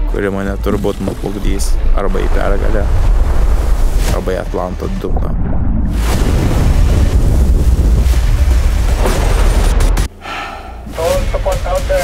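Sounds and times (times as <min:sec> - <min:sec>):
deep loud rumble: 0:01.1 - 0:10.1.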